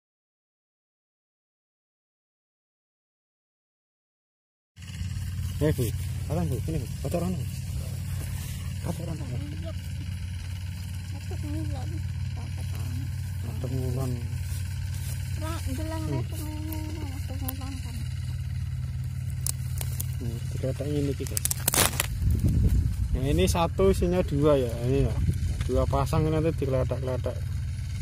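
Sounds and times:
steady low rumble: 4.8 - 28.0
plastic sheet rustling: 21.2 - 23.0.

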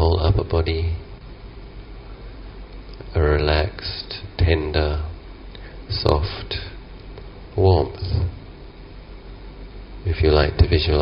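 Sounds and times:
faint hiss: 0.0 - 11.0
low hum: 0.0 - 11.0.

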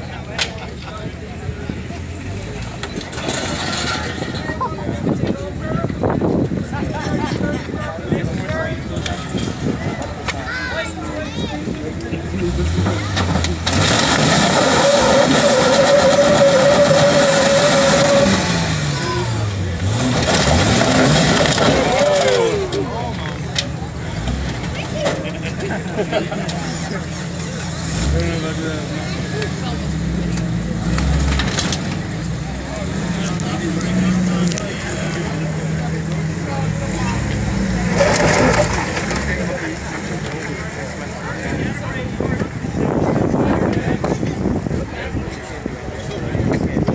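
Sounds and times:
engine revving hard: 12.4 - 22.4, 27.8 - 40.3.

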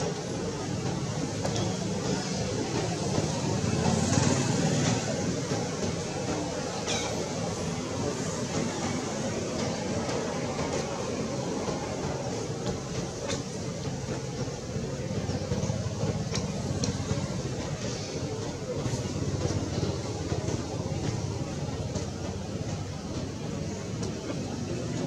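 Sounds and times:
continuous low rumble: 0.0 - 25.0.

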